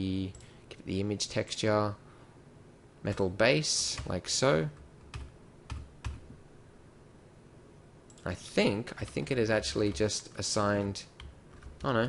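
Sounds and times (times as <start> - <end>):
computer keyboard keystrokes: 9.0 - 12.0.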